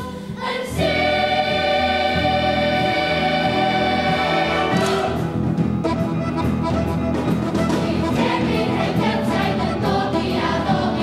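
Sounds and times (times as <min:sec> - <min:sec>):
children's choir singing: 0:00.0 - 0:05.3, 0:07.7 - 0:11.0
live band accompaniment: 0:00.0 - 0:11.0.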